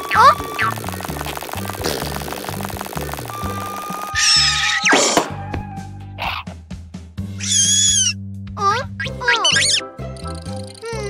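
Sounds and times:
squeaky cartoon sound effects: 0:00.0 - 0:00.9, 0:03.3 - 0:05.2, 0:07.4 - 0:11.0
cartoon background music: 0:00.0 - 0:11.0.

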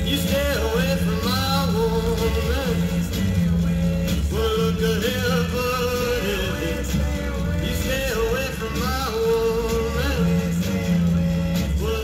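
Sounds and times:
rock and roll record playing: 0:00.0 - 0:12.0.

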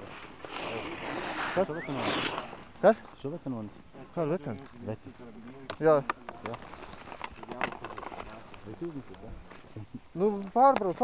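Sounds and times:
people talking quietly: 0:00.1 - 0:11.0.

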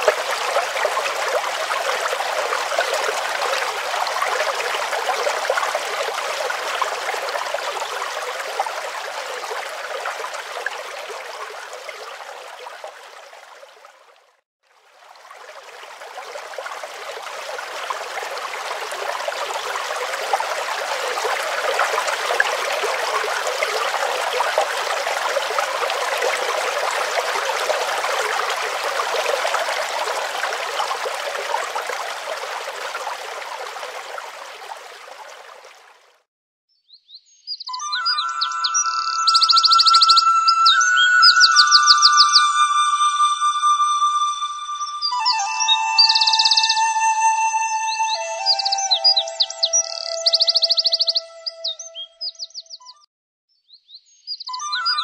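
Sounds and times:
water rushing over rocks: 0:00.0 - 0:14.2, 0:14.8 - 0:36.0.

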